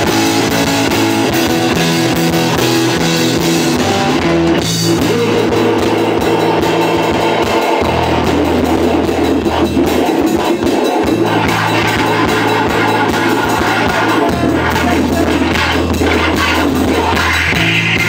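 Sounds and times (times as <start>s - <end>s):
electric bass low notes: 0.0s - 10.1s, 11.1s - 18.0s
distorted electric guitar: 0.0s - 18.0s
drum kit: 0.0s - 18.0s.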